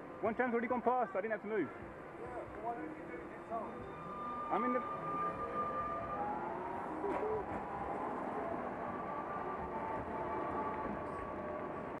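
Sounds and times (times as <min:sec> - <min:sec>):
street rumble: 0:02.1 - 0:12.0
tram electric drive whining: 0:03.2 - 0:12.0.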